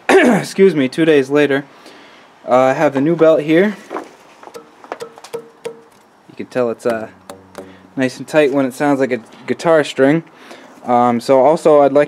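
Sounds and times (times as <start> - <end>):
drive belt plucked ringing: 4.6 - 8.7.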